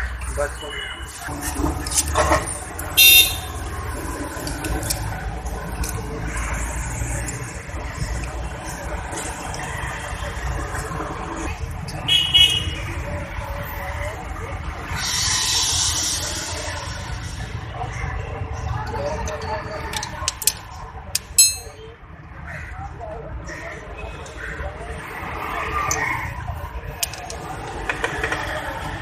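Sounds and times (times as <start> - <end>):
short horn toots: 3.0 - 3.5.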